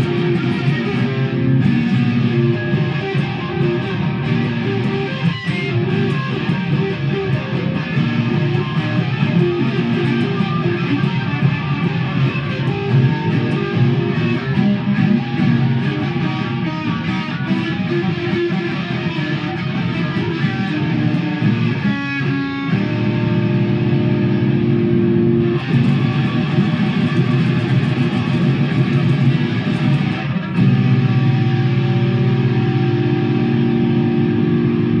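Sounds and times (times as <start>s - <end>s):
loud electric guitar chords: 0.0s - 35.0s.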